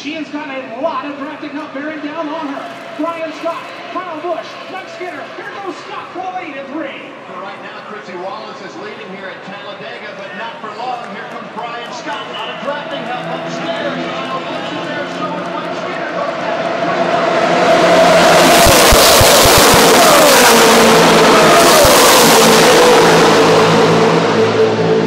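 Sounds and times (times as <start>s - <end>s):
race truck engines passing: 0.2s - 25.0s.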